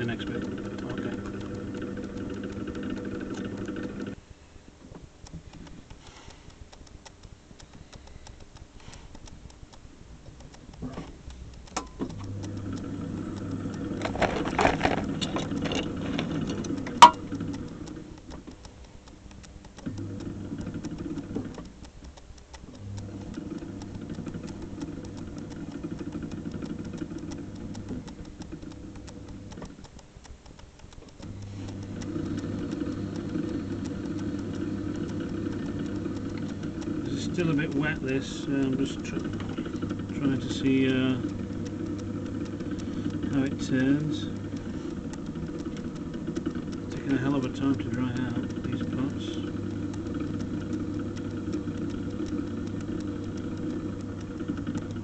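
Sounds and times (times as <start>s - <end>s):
pottery wheel motor humming: 0.0s - 55.0s
sharp click: 5.0s - 12.6s, 13.4s - 55.0s.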